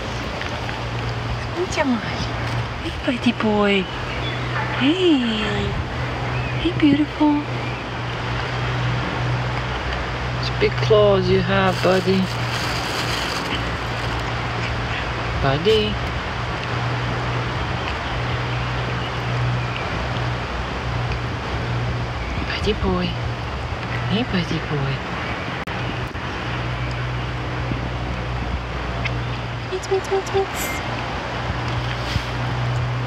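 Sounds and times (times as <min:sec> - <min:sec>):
steady background noise: 0:00.0 - 0:33.0
wind noise on microphone: 0:03.9 - 0:10.4, 0:11.7 - 0:24.1, 0:25.0 - 0:33.0.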